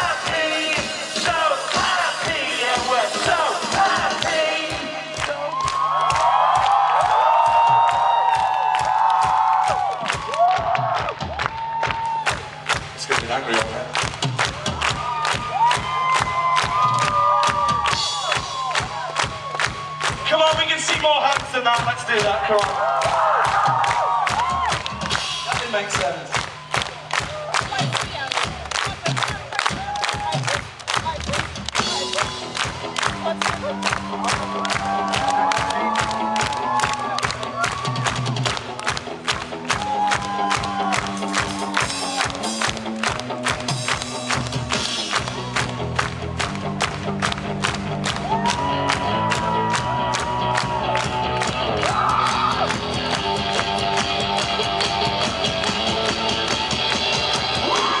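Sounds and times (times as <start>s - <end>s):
crowd cheering: 0.0s - 58.0s
driving drum beat: 0.0s - 58.0s
rock band playing live: 37.4s - 58.0s.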